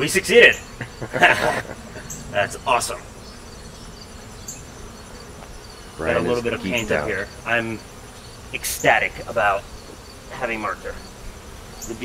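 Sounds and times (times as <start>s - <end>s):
honeybees buzzing: 0.0s - 12.0s.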